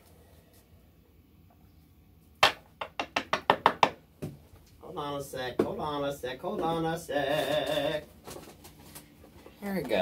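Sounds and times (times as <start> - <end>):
box knocking on wooden table: 2.4 - 4.4.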